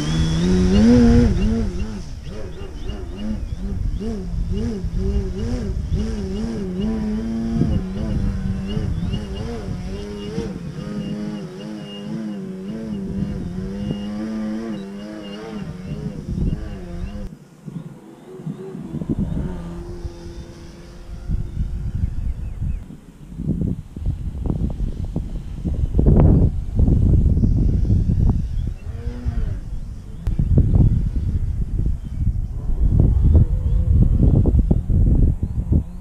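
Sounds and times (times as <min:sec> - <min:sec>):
model plane motor droning: 0:00.0 - 0:17.4, 0:18.8 - 0:23.2, 0:24.0 - 0:34.8
wind rumbling on microphone: 0:00.0 - 0:36.0.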